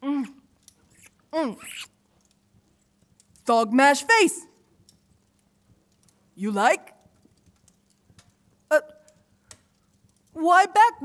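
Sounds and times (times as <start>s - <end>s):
faint clicks: 6.9s - 10.4s.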